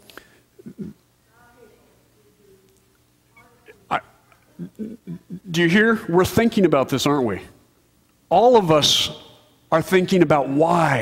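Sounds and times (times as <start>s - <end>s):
man speaking: 3.7s - 7.6s, 8.3s - 11.0s.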